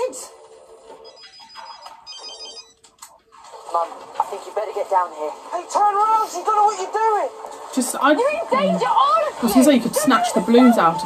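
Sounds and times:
phone ringtone high beeps: 1.0s - 2.8s.

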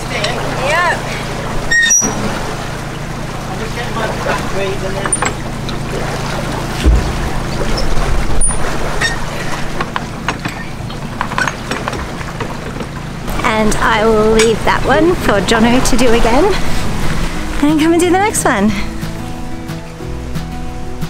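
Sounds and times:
low thump: 6.8s - 8.4s.

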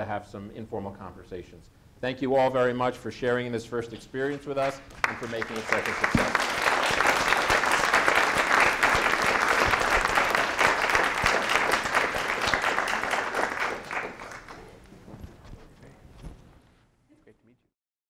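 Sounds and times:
audience applauding: 4.6s - 14.9s.

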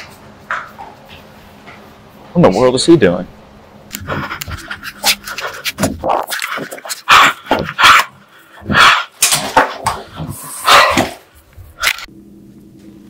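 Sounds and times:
dog-like panting and huffing: 4.0s - 9.1s.

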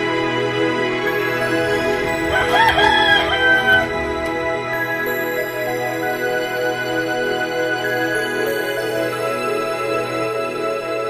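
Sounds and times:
background music with held chords: 0.0s - 11.0s
rooster crowing: 2.0s - 4.6s.

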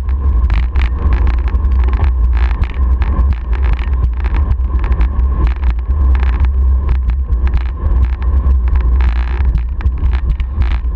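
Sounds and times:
wheels clicking over cracks: 0.0s - 10.9s
wheels rumbling over rough asphalt: 0.0s - 10.9s
wind buffeting microphone: 0.0s - 10.9s.

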